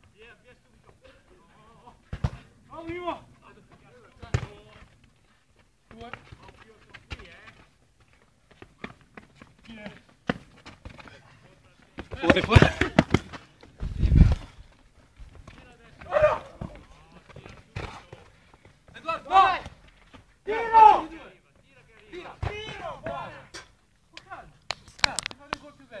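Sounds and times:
ball being kicked: 12.0s - 14.5s
players shouting: 15.9s - 17.2s, 19.0s - 19.8s, 20.4s - 21.4s.

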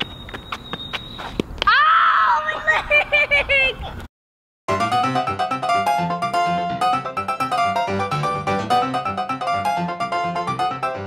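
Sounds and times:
child crying out: 1.7s - 2.7s.

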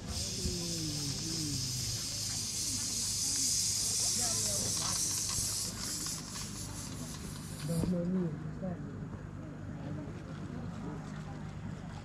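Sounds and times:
steady high hiss: 0.0s - 8.1s
faint voices talking: 0.0s - 12.0s.

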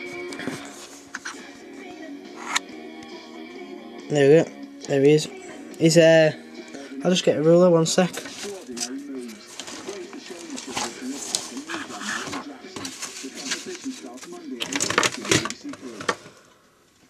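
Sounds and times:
muffled person speaking: 4.1s - 16.3s.

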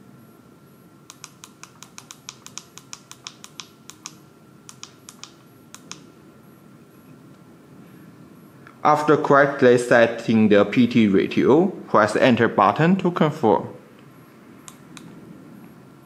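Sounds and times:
push button clicks: 1.1s - 6.1s.

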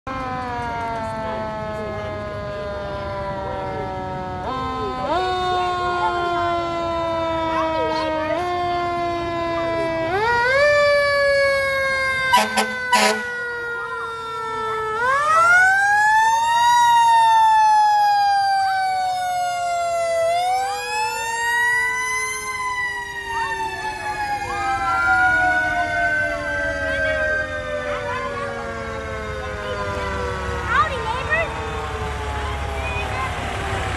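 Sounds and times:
fire engine siren wailing: 0.0s - 33.9s
short loud horn blasts: 12.3s - 13.3s.

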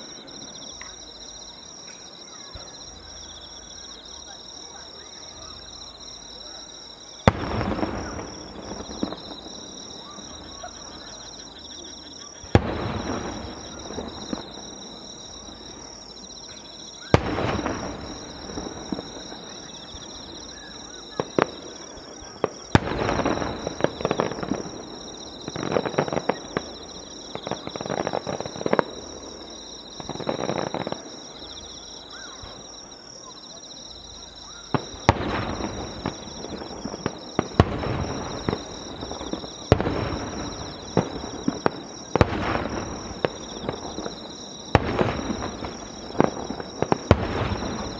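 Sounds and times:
insects chirping: 0.0s - 47.9s
firework crackling: 5.3s - 33.0s, 34.2s - 47.9s
firework shells bursting: 7.2s - 11.5s, 12.4s - 31.2s, 34.7s - 47.9s.

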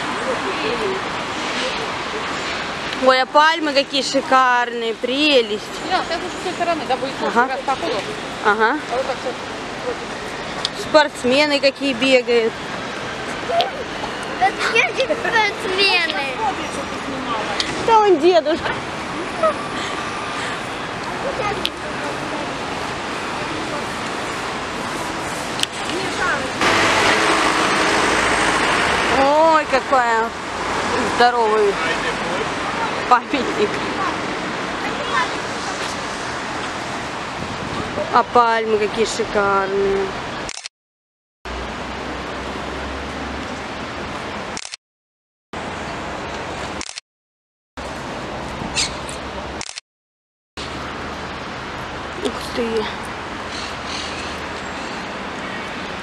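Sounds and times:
city street traffic noise: 0.0s - 40.7s, 41.5s - 44.8s, 45.6s - 47.0s, 47.8s - 49.8s, 50.6s - 56.0s.

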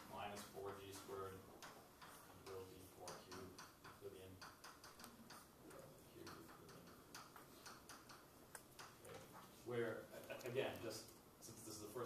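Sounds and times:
chalk tapping on blackboard: 0.4s - 5.6s, 6.2s - 9.6s.

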